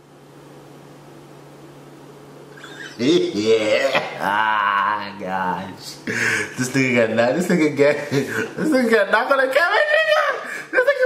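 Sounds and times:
steady hum and hiss: 0.0 - 11.0
man laughing muffled: 2.6 - 5.1.

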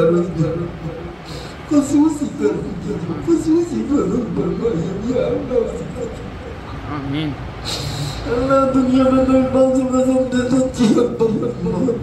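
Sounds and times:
brief hiss: 7.6 - 8.2.

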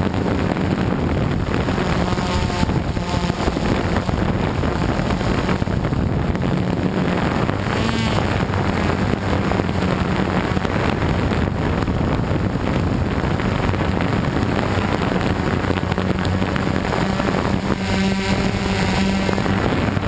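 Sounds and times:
drone propellers droning: 0.0 - 20.0
high whine: 0.0 - 20.0
wind rushing over microphone: 0.0 - 20.0.

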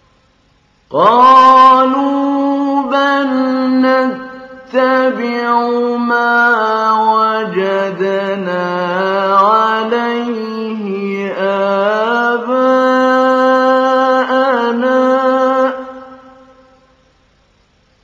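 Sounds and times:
man reciting melodic phrases: 0.9 - 16.6.

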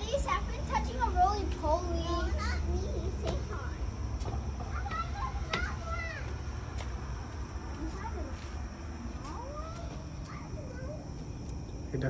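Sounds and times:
high-pitched voices calling out: 4.6 - 6.5.

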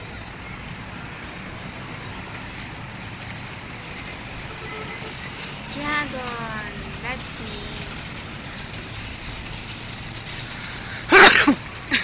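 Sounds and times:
cars driving past: 0.0 - 12.0.

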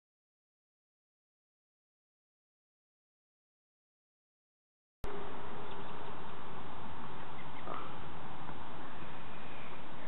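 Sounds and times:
outdoor background noise: 5.0 - 10.0
distant person calling: 7.0 - 8.1.

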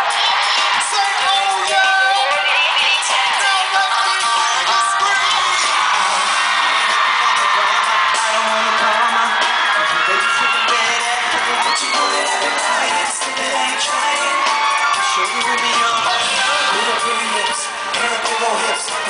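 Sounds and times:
fans screaming and cheering: 0.0 - 19.0
live pop music: 0.0 - 19.0.

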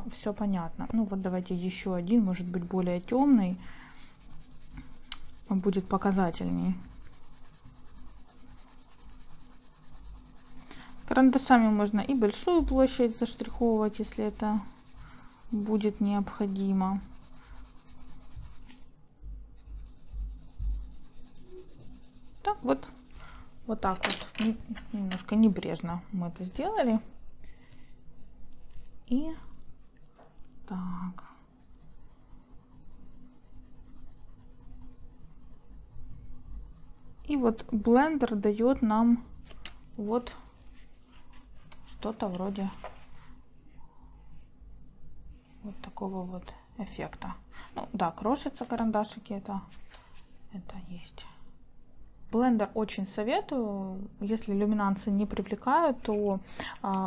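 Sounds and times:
pencil scratching on paper: 2.3 - 18.8, 19.6 - 23.1, 31.4 - 41.0.

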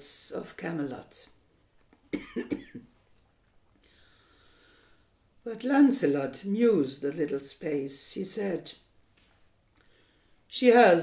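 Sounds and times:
woman coughing: 2.1 - 2.9.

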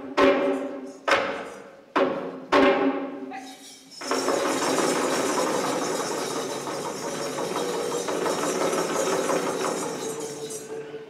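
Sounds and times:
fast drum roll: 4.0 - 10.4.

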